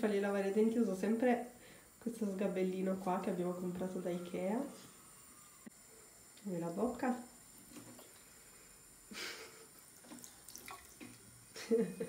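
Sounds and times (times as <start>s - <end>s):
child rinsing face splashing: 9.8s - 11.4s.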